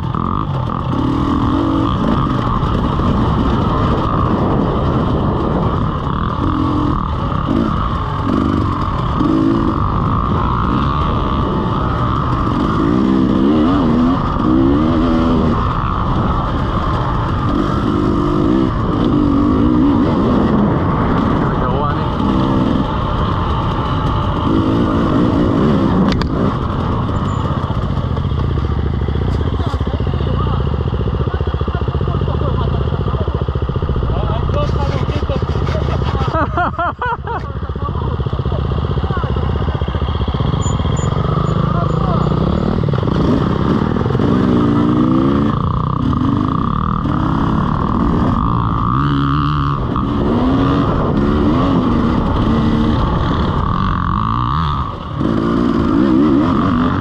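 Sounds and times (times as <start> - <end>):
motorbike engine revving: 0.0 - 57.0.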